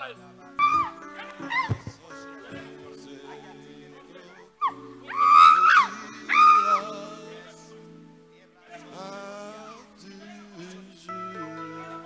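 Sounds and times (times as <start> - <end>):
background music: 0.0 - 12.0
woman wailing: 4.6 - 6.9.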